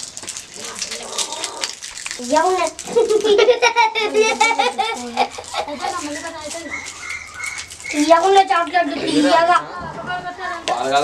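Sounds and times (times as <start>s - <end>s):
young boy laughing loudly: 2.9s - 6.0s.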